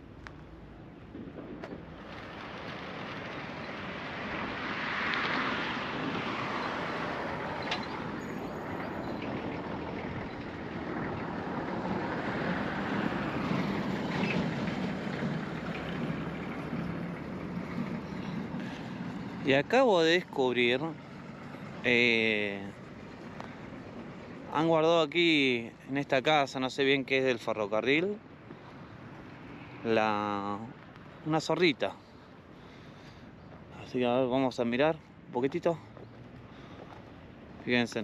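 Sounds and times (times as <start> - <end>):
road traffic passing: 0.0 - 38.0.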